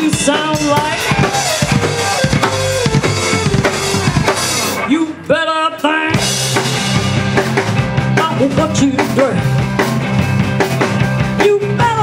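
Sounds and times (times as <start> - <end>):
drum fill on snare and bass drum: 0.0 - 4.8
rock band playing: 0.0 - 12.0.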